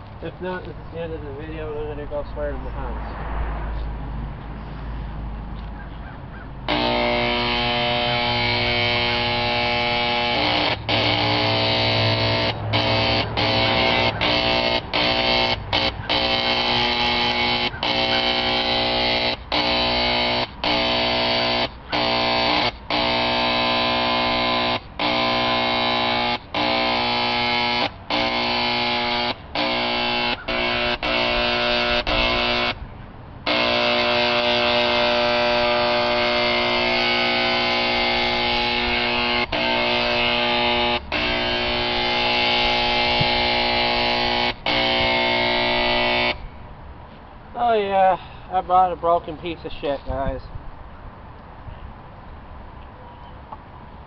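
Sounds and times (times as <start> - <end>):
electric paint sprayer buzzing: 6.7 - 32.8, 33.4 - 46.4.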